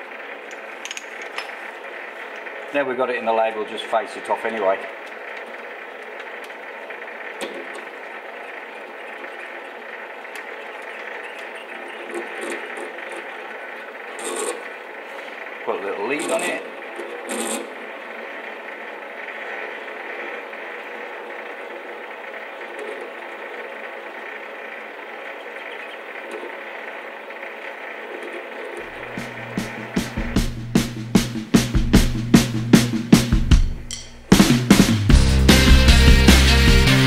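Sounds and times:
mini lathe running: 0:00.0 - 0:31.7
rock music with drums: 0:28.8 - 0:37.0.

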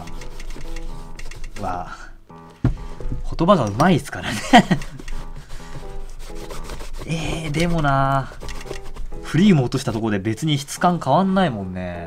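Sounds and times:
cloth rubbing on leather shoe: 0:05.0 - 0:10.2.

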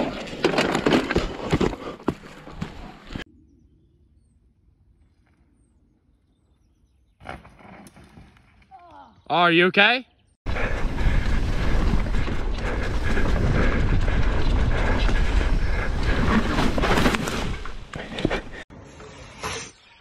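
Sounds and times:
bike rattling over rough trail: 0:00.0 - 0:03.2, 0:10.5 - 0:18.6
wind noise on microphone: 0:10.5 - 0:17.6.

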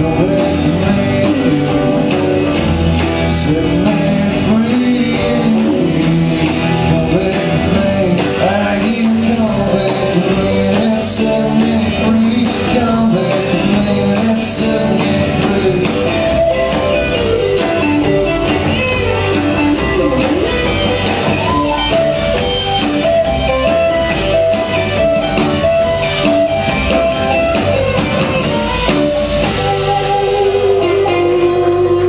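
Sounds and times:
folk-rock band playing: 0:00.0 - 0:32.0
steady drum beat: 0:00.0 - 0:32.0.

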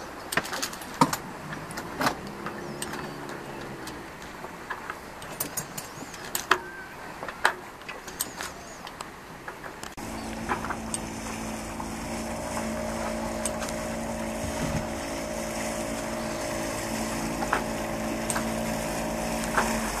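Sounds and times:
small outboard motor running: 0:10.0 - 0:20.0.

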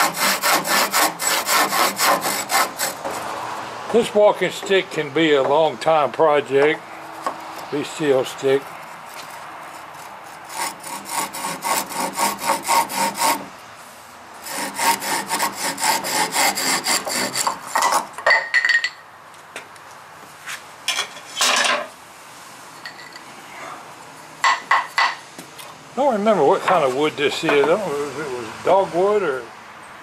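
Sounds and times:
hand saw cutting wood: 0:00.0 - 0:03.4, 0:07.3 - 0:13.5, 0:14.4 - 0:18.2.

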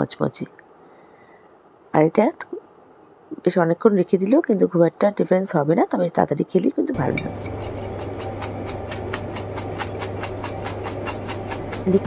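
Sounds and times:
electric motor humming and ticking: 0:07.0 - 0:12.0.

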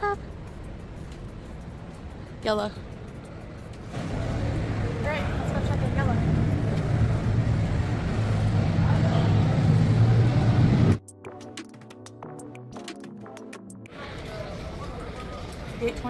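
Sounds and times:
traffic engine drone: 0:00.0 - 0:11.0, 0:13.9 - 0:16.0
faint voices: 0:13.9 - 0:16.0.

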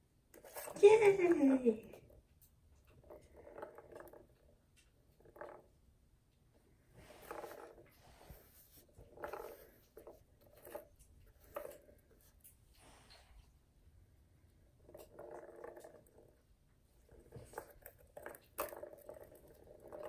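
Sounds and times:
plastic ball rolling in toy track: 0:00.3 - 0:02.2, 0:02.8 - 0:05.8, 0:07.0 - 0:12.5, 0:14.7 - 0:20.0.

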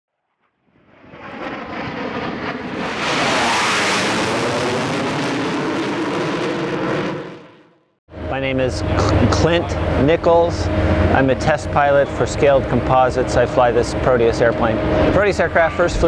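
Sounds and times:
aircraft passing by: 0:00.6 - 0:16.0.

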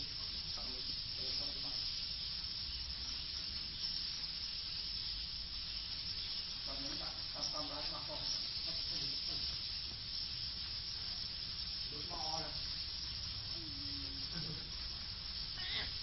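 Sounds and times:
flock of swiftlets chirping: 0:00.0 - 0:16.0
voices talking: 0:00.0 - 0:16.0.

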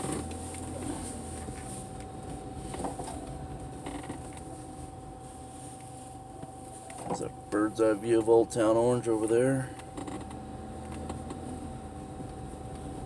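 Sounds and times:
car engine and road rumble: 0:00.0 - 0:13.0
faint hum: 0:00.0 - 0:13.0.

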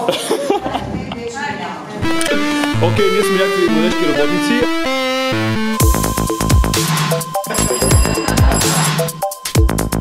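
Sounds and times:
person speaking: 0:02.0 - 0:05.8.

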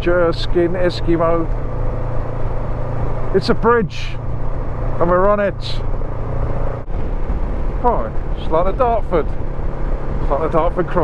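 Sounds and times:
motorcycle engine drone: 0:00.0 - 0:11.0
wind rush over microphone: 0:06.1 - 0:10.3.

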